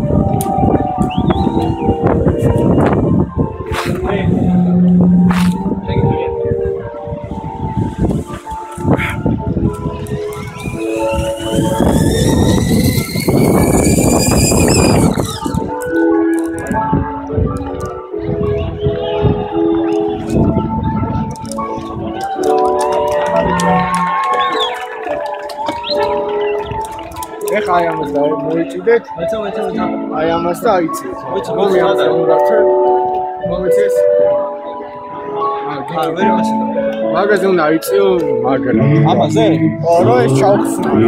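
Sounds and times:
background music of held notes: 0:00.0 - 0:41.0
zipline trolley rushing with whine: 0:10.0 - 0:15.8.

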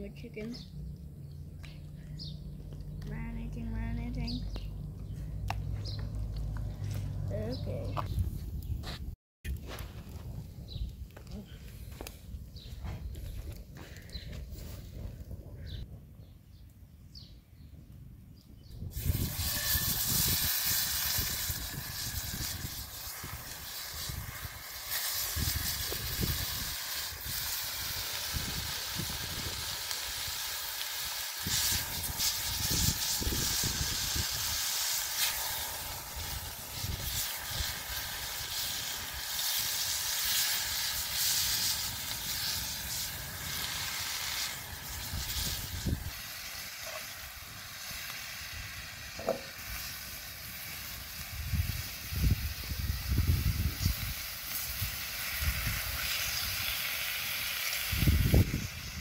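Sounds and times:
chicken sizzling in hot oil: 0:18.9 - 0:59.0.

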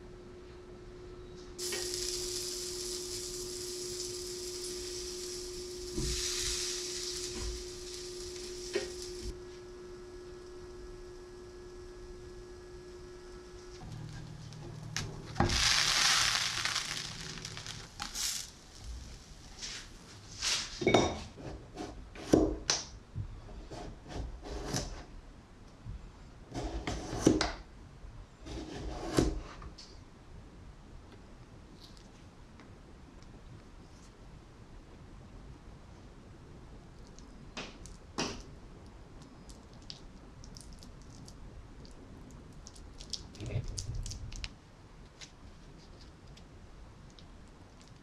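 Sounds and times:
steady low hum: 0:00.0 - 0:20.5
butter sizzling in a pan: 0:01.6 - 0:09.4, 0:13.5 - 0:20.0.

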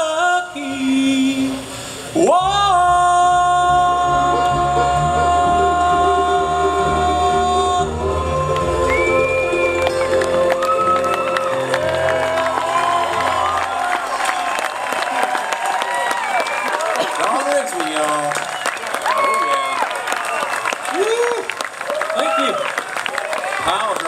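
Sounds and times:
audience applause and cheers: 0:08.2 - 0:24.0.

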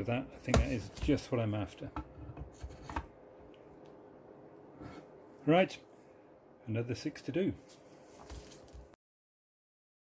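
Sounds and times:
faint steady hum: 0:00.0 - 0:09.0.

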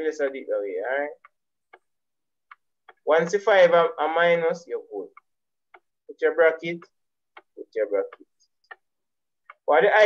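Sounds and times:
stylus tapping on surface: 0:01.2 - 0:03.1, 0:05.1 - 0:06.0, 0:06.6 - 0:10.0.

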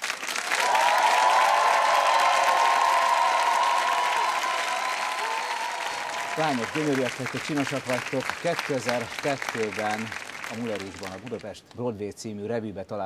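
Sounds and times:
audience applauding: 0:00.0 - 0:11.5.

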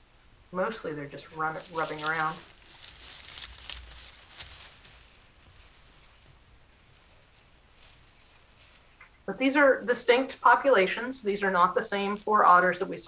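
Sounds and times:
otters rustling on grass: 0:00.6 - 0:09.3.

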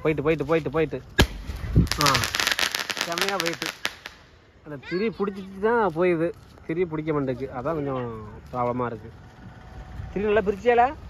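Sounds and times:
firework crackling: 0:00.4 - 0:04.6
voices calling out: 0:07.0 - 0:11.0.

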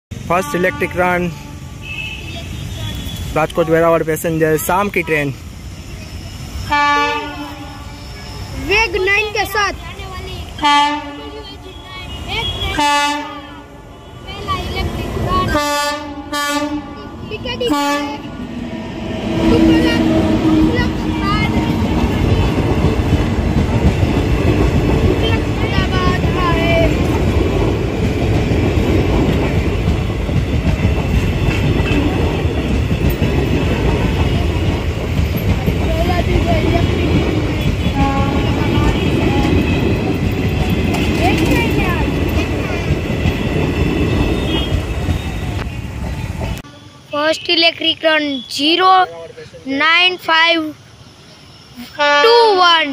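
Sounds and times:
train wheels rumbling on rails: 0:00.1 - 0:48.2
clickety-clack over rail joints: 0:20.4 - 0:46.6.

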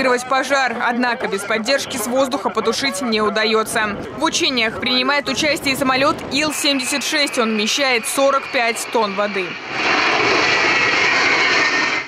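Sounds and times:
jet engines passing low overhead: 0:03.4 - 0:12.0.

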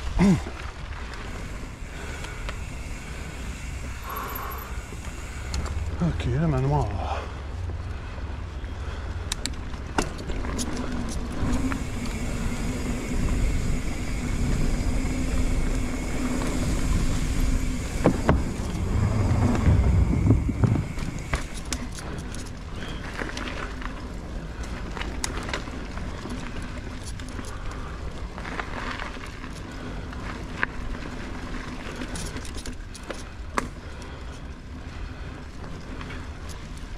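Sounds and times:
bike rattling over bumps: 0:00.0 - 0:36.9
bike tyres rumbling on dirt: 0:00.0 - 0:36.9
wind on camera: 0:11.2 - 0:21.9.

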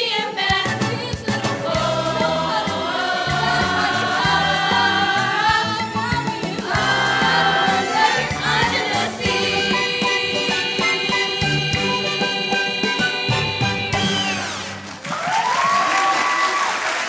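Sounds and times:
teenagers singing together: 0:00.0 - 0:14.7
instrumental accompaniment: 0:00.3 - 0:15.0.

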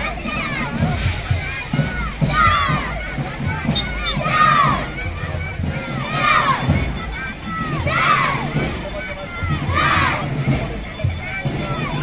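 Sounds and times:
children chanting in unison: 0:00.0 - 0:10.7.

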